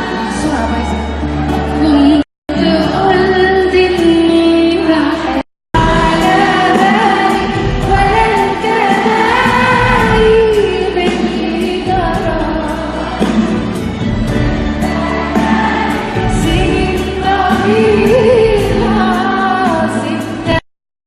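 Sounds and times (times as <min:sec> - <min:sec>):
live band with drum kit: 0:05.8 - 0:20.6.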